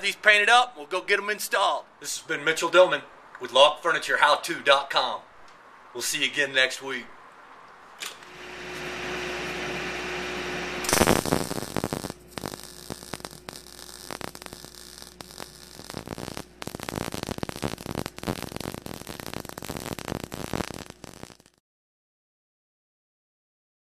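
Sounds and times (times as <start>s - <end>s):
steady hiss and hum: 0.0s - 21.6s
welder arc crackling: 8.2s - 21.6s.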